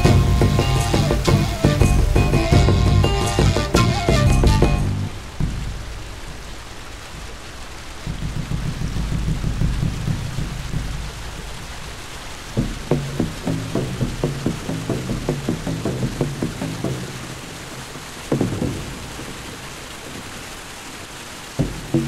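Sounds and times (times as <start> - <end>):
steady drum beat: 0.0 - 6.5, 8.0 - 17.5, 18.3 - 19.4, 21.6 - 22.0
low rumble: 0.0 - 16.2
rain-like hiss: 0.0 - 22.0.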